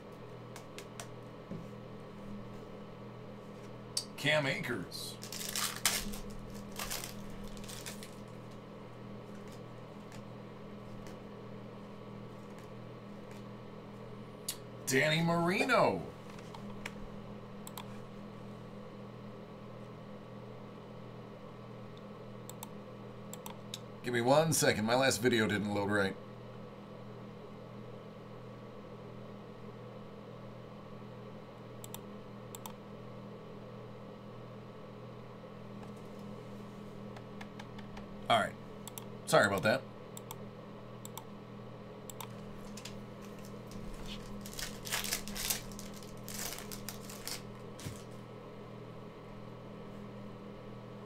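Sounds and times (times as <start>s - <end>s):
steady low hum: 0.0s - 51.0s
foil wrapper crinkling and tearing: 5.2s - 8.2s, 43.2s - 48.1s
handling cards: 5.2s - 8.6s, 9.2s - 11.2s, 42.3s - 48.2s.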